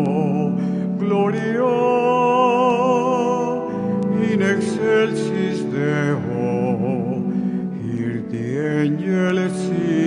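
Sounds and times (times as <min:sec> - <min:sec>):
church organ music: 0:00.0 - 0:10.0.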